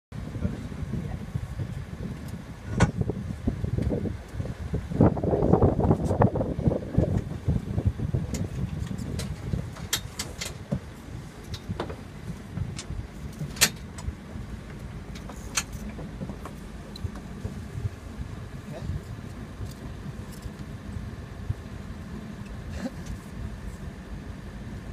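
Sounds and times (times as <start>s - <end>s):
steady low rumble: 0.1s - 24.9s
deck hardware clicks and knocks: 2.2s - 3.1s, 8.3s - 17.7s.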